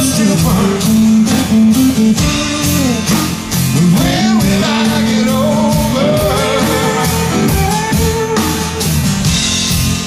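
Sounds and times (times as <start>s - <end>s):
bending lead guitar notes: 0.0s - 10.0s
live blues-rock band playing: 0.0s - 10.0s.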